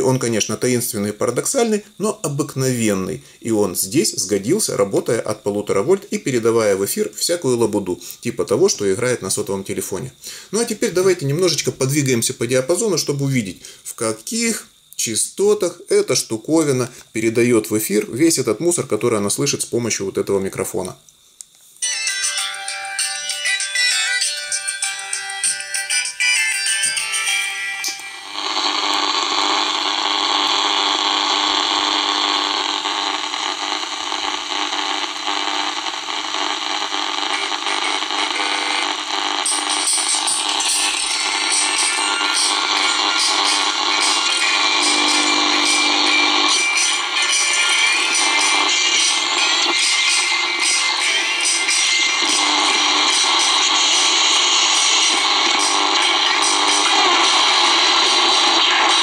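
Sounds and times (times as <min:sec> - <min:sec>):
dense radio noise: 0:00.0 - 0:21.0, 0:27.9 - 0:59.0
tinny music over radio: 0:00.0 - 0:21.0, 0:21.8 - 0:59.0.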